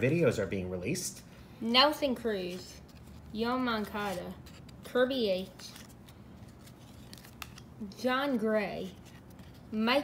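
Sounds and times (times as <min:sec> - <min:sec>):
cards sliding against cards: 0:02.4 - 0:07.8, 0:08.8 - 0:09.9
soft card clicks: 0:03.8 - 0:07.7.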